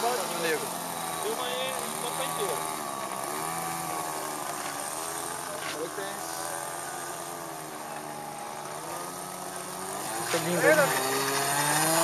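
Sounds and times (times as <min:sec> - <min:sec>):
model plane engine running: 0:00.0 - 0:12.0.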